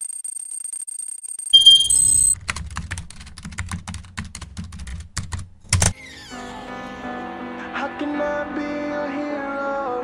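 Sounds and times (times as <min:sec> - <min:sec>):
rapid typing clicks: 0:00.0 - 0:05.9.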